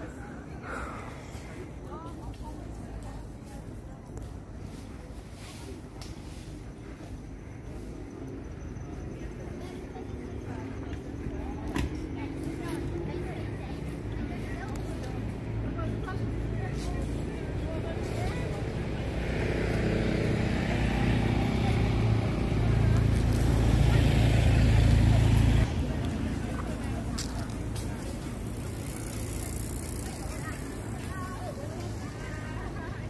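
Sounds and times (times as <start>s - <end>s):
people's voices: 0.0s - 33.0s
traffic: 0.0s - 33.0s
vehicle engine hum: 0.0s - 33.0s.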